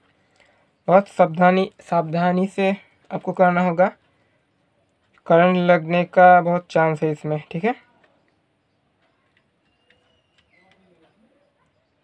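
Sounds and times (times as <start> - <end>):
faint probe clicks: 0.0 - 5.7.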